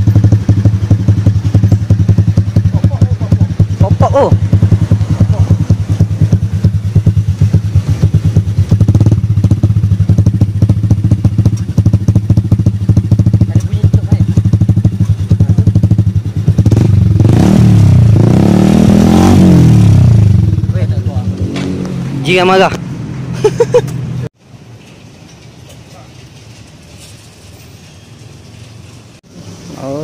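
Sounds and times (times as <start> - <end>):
motorcycle engine idling and revving: 0.0 - 30.0.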